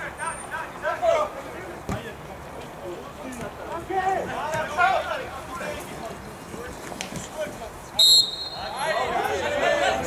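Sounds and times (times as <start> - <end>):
players shouting: 8.2 - 10.0.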